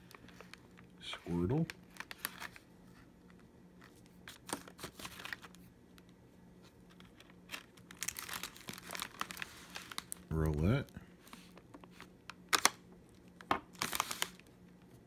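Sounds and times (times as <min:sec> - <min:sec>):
plastic wrapper crinkling: 0:00.0 - 0:06.1, 0:06.9 - 0:14.8.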